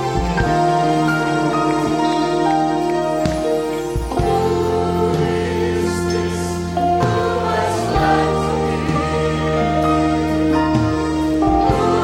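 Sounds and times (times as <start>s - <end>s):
choir singing gospel song: 0.0s - 12.0s
live band with electric guitars: 0.0s - 12.0s.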